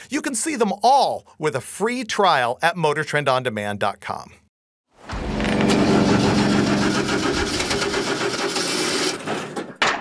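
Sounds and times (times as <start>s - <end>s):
rapid mechanical rattle: 5.2s - 9.6s.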